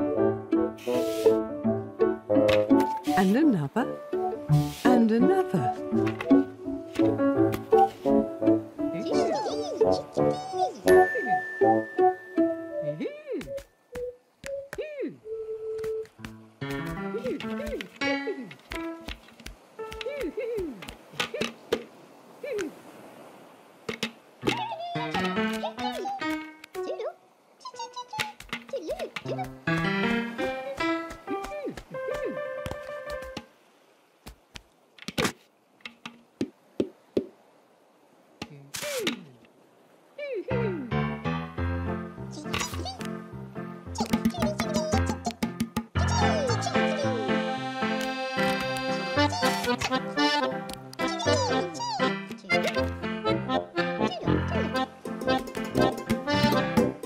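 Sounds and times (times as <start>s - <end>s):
playful cartoon music: 0.0s - 14.7s, 15.8s - 19.2s, 24.4s - 27.0s, 29.0s - 33.4s, 40.6s - 57.0s.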